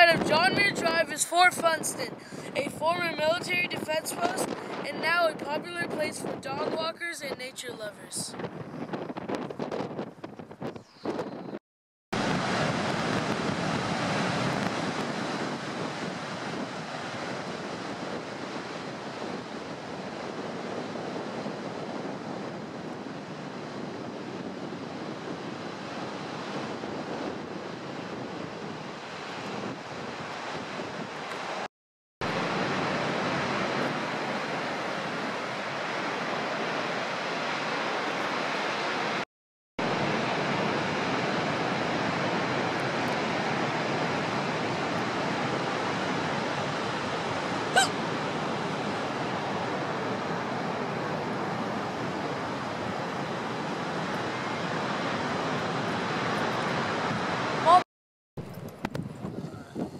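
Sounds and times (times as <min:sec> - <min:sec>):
ocean surf rushing: 0:00.0 - 0:07.5, 0:12.2 - 0:39.2, 0:39.8 - 0:57.8
wind on microphone: 0:00.0 - 0:11.6, 0:12.2 - 0:39.2, 0:39.8 - 0:57.8, 0:58.4 - 0:59.9.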